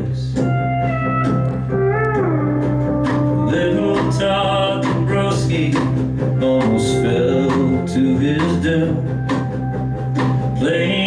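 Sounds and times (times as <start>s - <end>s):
bass guitar: 0.0s - 11.0s
steel guitar melody sliding: 0.4s - 11.0s
strummed acoustic guitar: 2.2s - 11.0s.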